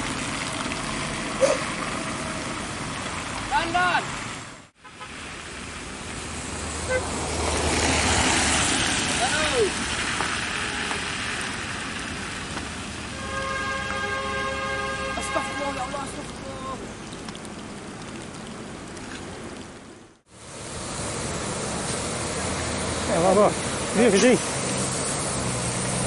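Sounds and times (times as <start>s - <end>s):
vehicle passing on wet road: 0.0s - 26.0s
vehicle horn: 6.8s - 7.1s, 10.5s - 11.2s, 13.1s - 16.0s.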